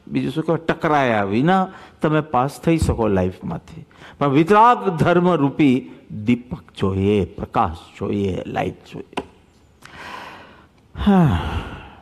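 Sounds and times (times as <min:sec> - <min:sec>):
man breathing in: 0:09.8 - 0:12.0
man sighing: 0:09.9 - 0:12.0.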